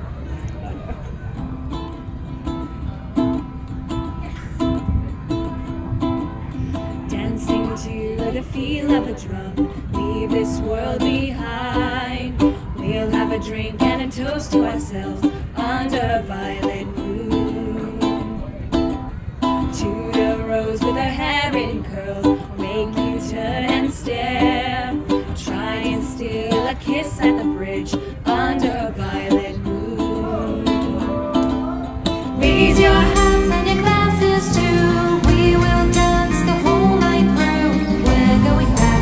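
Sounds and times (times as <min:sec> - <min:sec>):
ukulele playing: 0:00.4 - 0:39.0
women singing: 0:07.0 - 0:18.5, 0:19.6 - 0:39.0.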